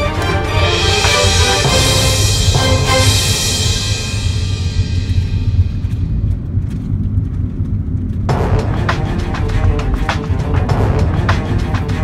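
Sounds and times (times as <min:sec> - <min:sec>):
music with sharp beats: 0:00.0 - 0:06.6, 0:08.3 - 0:12.0
car engine and tyres rumbling: 0:01.7 - 0:12.0.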